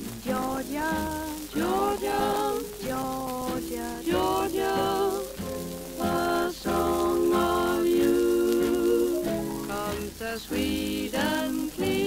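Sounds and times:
record crackle: 0:00.0 - 0:12.0
swing band music: 0:00.0 - 0:12.0.

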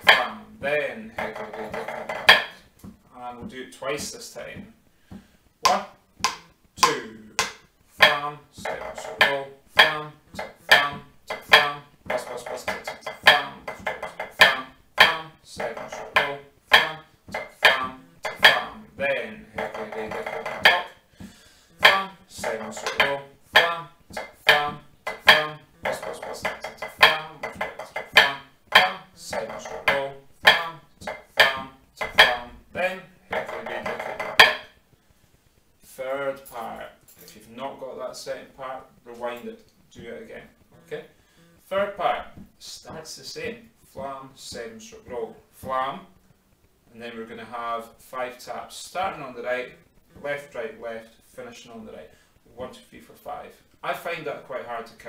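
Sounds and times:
drumsticks on practice pad: 0:00.0 - 0:34.9.

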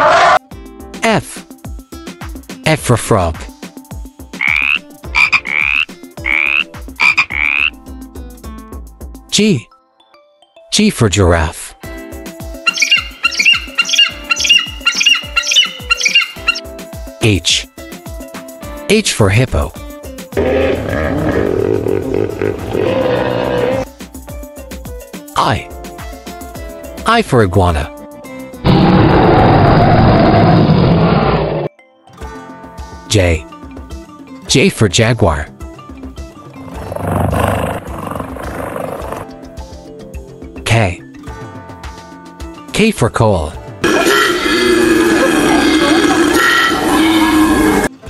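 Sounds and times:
big cat roar: 0:00.0 - 0:00.4, 0:20.4 - 0:23.8, 0:28.7 - 0:31.7, 0:36.6 - 0:39.3, 0:43.8 - 0:47.9
children's music with drum beat: 0:00.7 - 0:09.4, 0:11.8 - 0:20.4, 0:23.8 - 0:28.4, 0:39.4 - 0:43.0.

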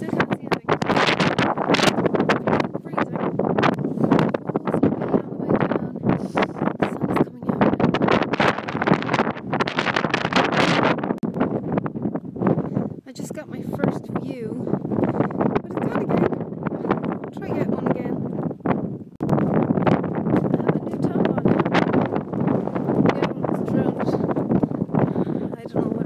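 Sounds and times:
woman talking: 0:00.0 - 0:01.2, 0:02.4 - 0:03.3, 0:04.5 - 0:08.2, 0:13.1 - 0:14.8, 0:15.6 - 0:16.4, 0:17.3 - 0:18.2, 0:20.4 - 0:21.7, 0:25.4 - 0:26.0
wind buffeting microphone: 0:00.0 - 0:26.0.

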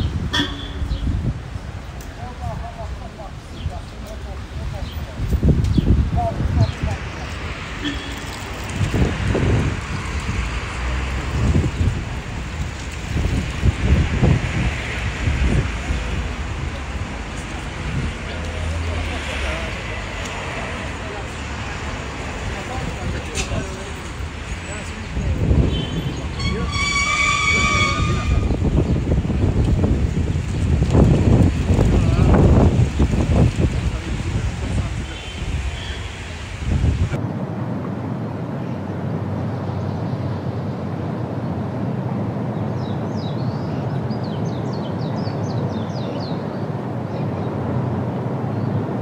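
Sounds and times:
traffic rumbling: 0:00.0 - 0:49.0
vehicle horn: 0:00.3 - 0:01.1, 0:07.8 - 0:08.4, 0:25.6 - 0:28.7.

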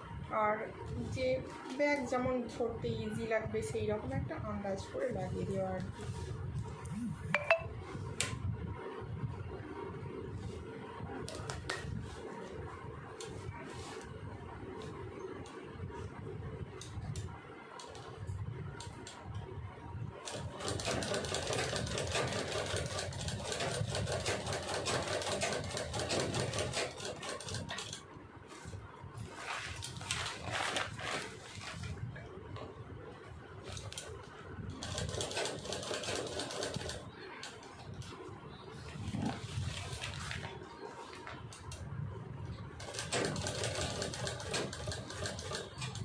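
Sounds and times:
sewing machine stitching: 0:20.3 - 0:28.0, 0:34.8 - 0:37.0, 0:42.8 - 0:46.0.

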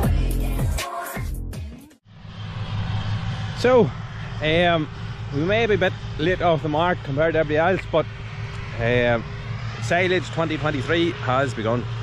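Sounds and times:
low outdoor rumble: 0:02.1 - 0:12.0
man talking: 0:03.6 - 0:08.1, 0:08.8 - 0:11.9.

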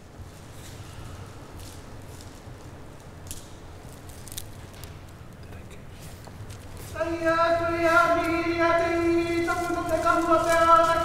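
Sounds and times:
cloak rustling: 0:07.8 - 0:11.0.

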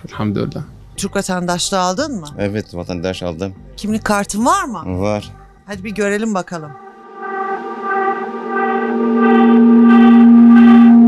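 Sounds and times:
background music: 0:00.0 - 0:11.0
low gong-like tone: 0:06.8 - 0:11.0.

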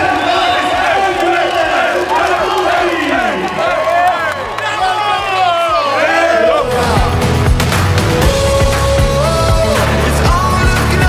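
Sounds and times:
crowd: 0:00.0 - 0:11.0
men talking and shouting: 0:00.0 - 0:11.0.

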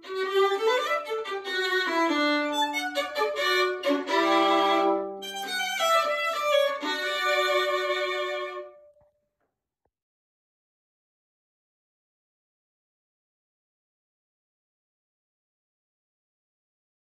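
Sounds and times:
solo violin: 0:00.0 - 0:09.0.

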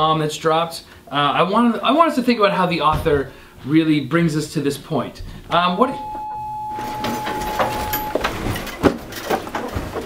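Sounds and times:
electronic bell tone: 0:05.8 - 0:08.7
chairs moving: 0:06.0 - 0:10.0
students packing up: 0:06.0 - 0:10.0.

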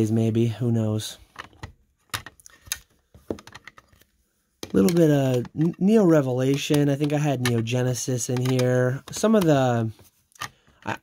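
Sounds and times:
plastic slabs clicking together: 0:06.4 - 0:09.7.

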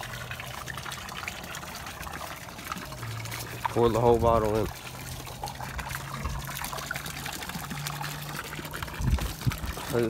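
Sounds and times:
water trickling into pond: 0:00.0 - 0:10.0.

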